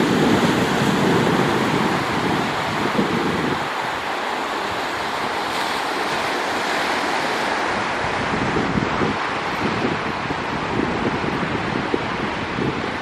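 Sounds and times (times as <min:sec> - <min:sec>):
surf washing up a sandy beach: 0:00.0 - 0:13.0
wind buffeting microphone: 0:00.0 - 0:13.0.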